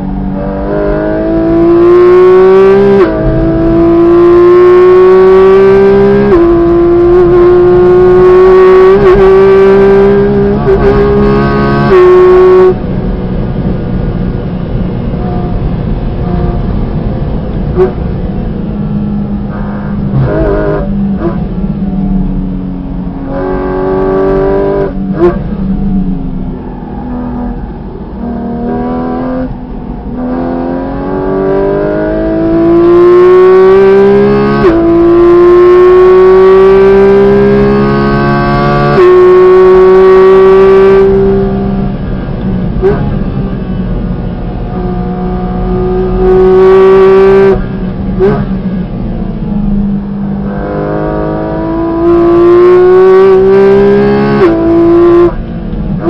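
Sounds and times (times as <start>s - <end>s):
car engine revving: 0.0s - 56.0s.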